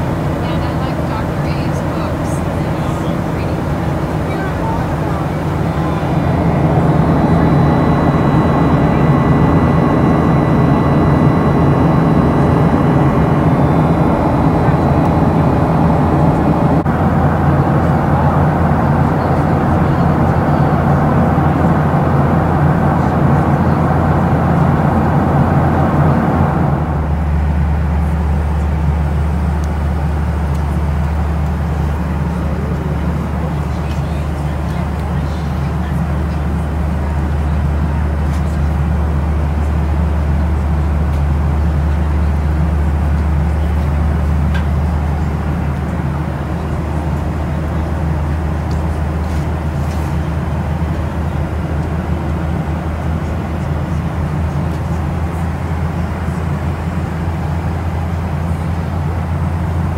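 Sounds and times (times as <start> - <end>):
jet engine cabin roar: 0.0 - 59.9.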